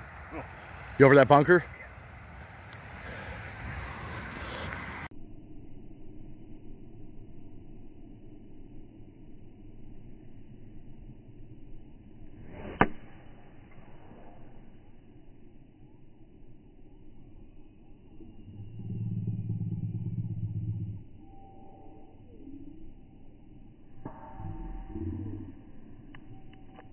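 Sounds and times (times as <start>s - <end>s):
loud low hum: 0.0s - 26.9s
low rumble: 1.7s - 26.9s
golf club striking ball: 12.5s - 13.2s.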